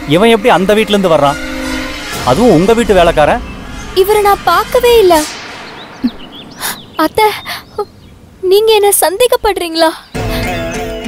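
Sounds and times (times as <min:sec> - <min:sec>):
falling whoosh: 0:02.0 - 0:08.2
faint bird chirps: 0:05.4 - 0:09.0.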